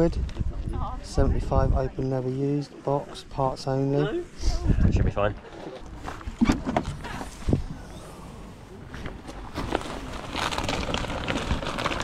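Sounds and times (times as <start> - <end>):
plastic bags rustling: 9.0 - 12.0.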